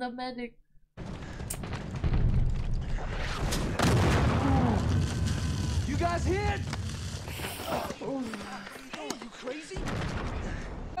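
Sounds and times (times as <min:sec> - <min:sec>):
booming shellfire: 0:01.0 - 0:07.3, 0:09.8 - 0:11.0
gunshots: 0:01.0 - 0:07.6.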